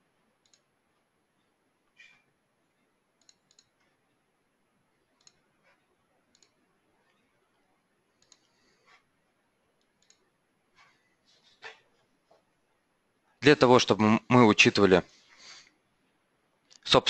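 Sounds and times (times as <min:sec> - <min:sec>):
computer mouse clicks: 0:00.4 - 0:00.8, 0:03.1 - 0:04.0, 0:05.1 - 0:09.0, 0:09.8 - 0:10.4.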